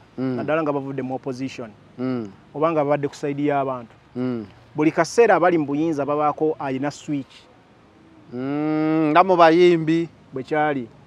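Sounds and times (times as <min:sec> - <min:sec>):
man humming in hesitation: 0:00.2 - 0:00.5, 0:02.0 - 0:02.4, 0:04.2 - 0:04.6, 0:08.3 - 0:09.0
man speaking: 0:00.2 - 0:07.5, 0:08.3 - 0:10.9.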